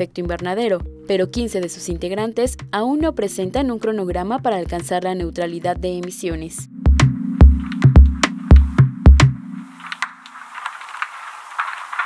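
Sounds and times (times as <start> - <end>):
low music tone: 0.3 - 10.4
crackling rustling hiss: 9.5 - 12.0
small scattered ticks: 9.7 - 12.0.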